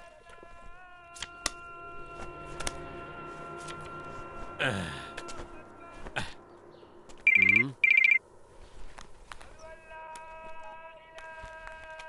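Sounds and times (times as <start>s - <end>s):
telephone ringing: 7.3s - 8.2s.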